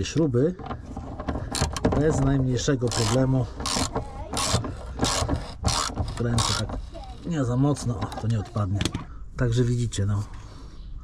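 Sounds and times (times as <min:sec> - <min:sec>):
ratchet wrench rasping: 0:02.8 - 0:07.3.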